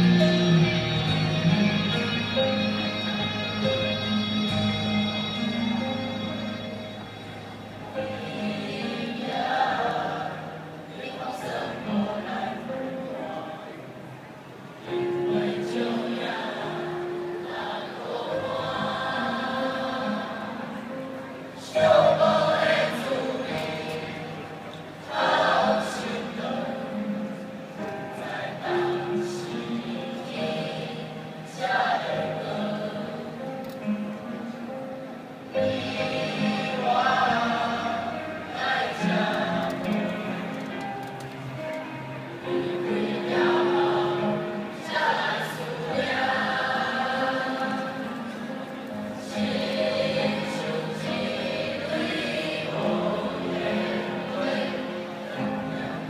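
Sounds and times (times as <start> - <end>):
choir singing long notes: 0.0 - 56.0.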